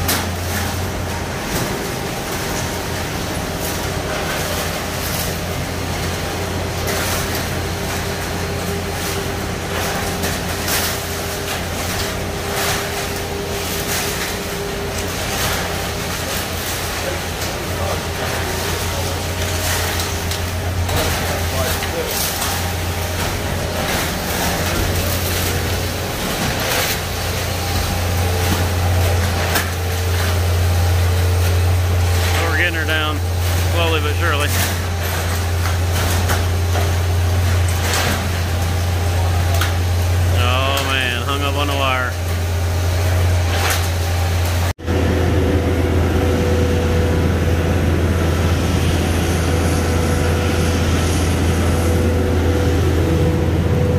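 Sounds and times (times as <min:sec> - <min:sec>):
concrete pump truck droning: 0:00.0 - 0:53.9.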